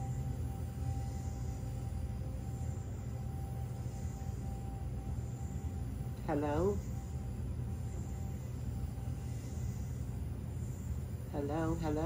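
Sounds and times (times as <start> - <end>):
low hum and rumble: 0.0 - 12.0.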